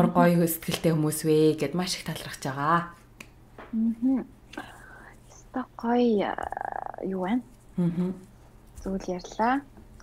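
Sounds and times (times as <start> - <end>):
woman talking: 0.0 - 3.0
creaky vocal sound: 6.3 - 7.2.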